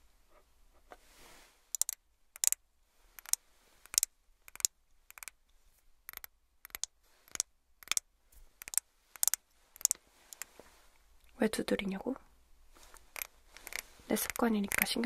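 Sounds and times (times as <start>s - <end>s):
fingernails tapping on bottle: 6.1s - 8.0s, 8.6s - 10.5s, 13.1s - 15.0s.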